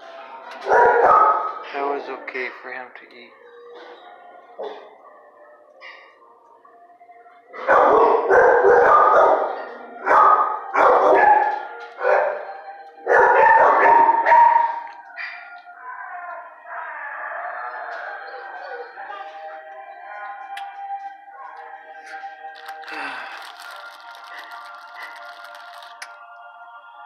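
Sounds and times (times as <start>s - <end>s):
dogs barking: 0.5s - 1.7s, 3.3s - 6.2s, 7.4s - 20.4s.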